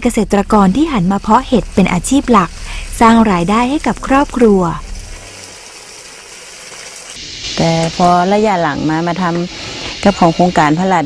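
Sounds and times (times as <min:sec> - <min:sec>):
hose nozzle spraying water: 0:00.4 - 0:10.7.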